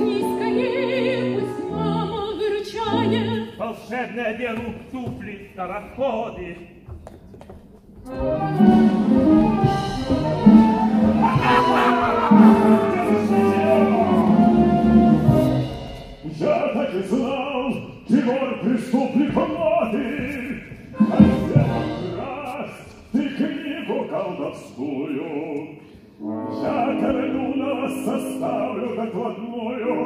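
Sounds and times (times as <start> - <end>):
theatre music with singing: 0.0 - 7.0, 7.8 - 30.0.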